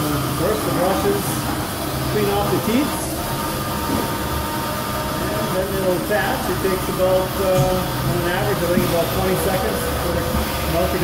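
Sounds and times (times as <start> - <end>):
milking machine brushes running: 0.0 - 11.0.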